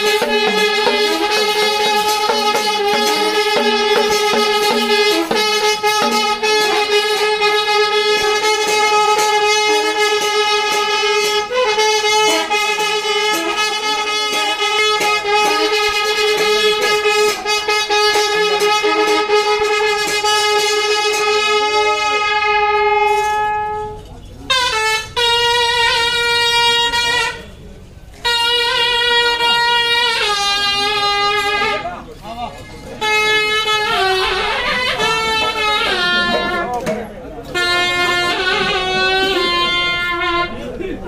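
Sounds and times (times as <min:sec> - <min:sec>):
wind instrument long note: 0:00.0 - 0:09.8.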